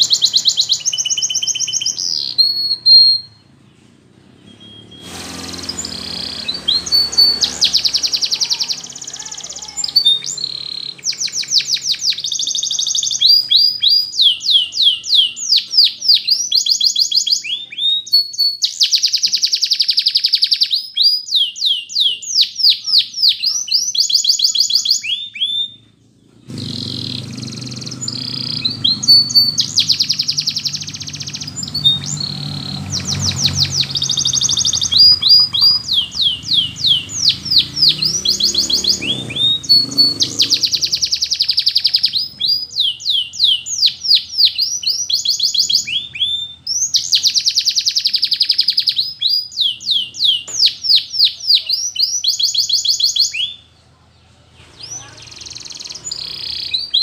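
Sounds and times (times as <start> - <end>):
canary singing whistles and trills: 0.0 - 53.8, 54.6 - 57.0.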